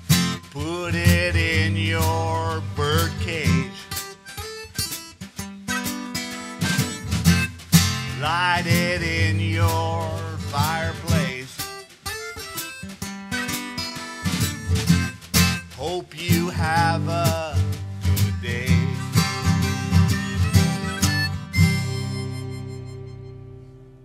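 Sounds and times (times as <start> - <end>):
harmonica bent notes: 0.0 - 24.0
strummed acoustic guitar: 0.0 - 24.0.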